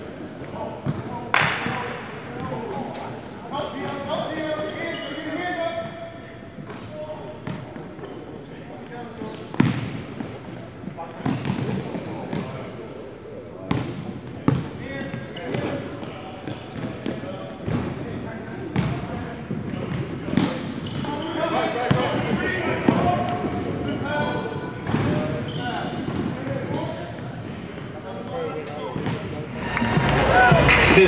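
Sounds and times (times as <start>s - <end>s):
voices echoing in gym: 0.0s - 31.0s
indistinct voices: 29.5s - 31.0s.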